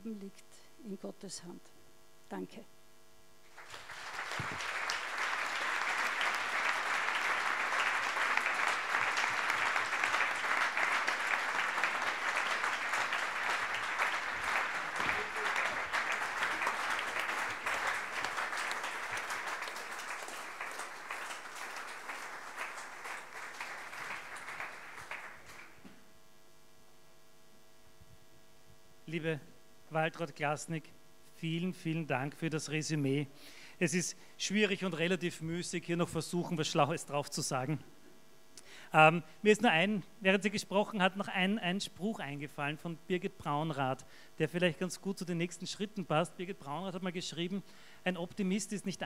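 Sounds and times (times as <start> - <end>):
audience applause: 3.5 - 25.8.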